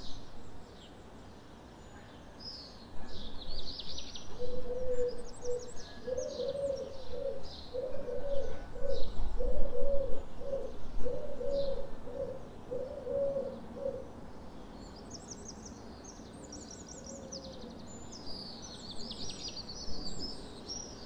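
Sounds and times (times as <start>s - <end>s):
dove cooing: 4.4s - 14.1s.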